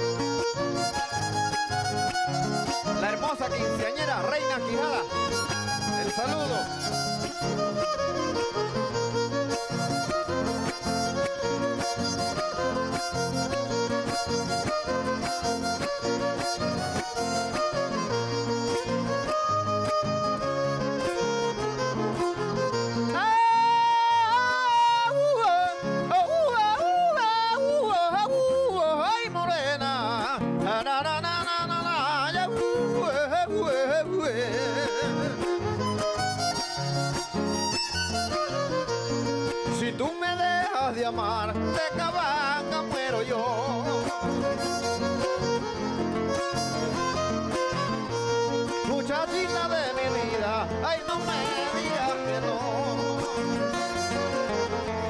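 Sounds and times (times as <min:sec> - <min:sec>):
strummed acoustic guitars: 0:00.0 - 0:55.0
violin: 0:00.0 - 0:55.0
man singing: 0:21.9 - 0:36.8, 0:39.2 - 0:45.8, 0:46.6 - 0:55.0.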